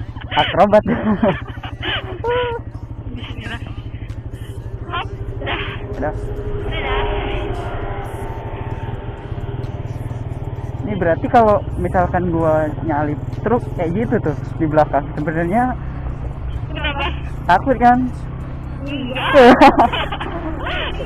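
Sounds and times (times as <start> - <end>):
motorcycle engine running: 0.0 - 21.0.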